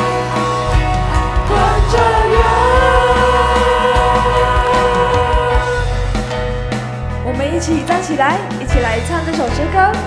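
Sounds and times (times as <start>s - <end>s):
worship band and singers: 0.0s - 6.8s.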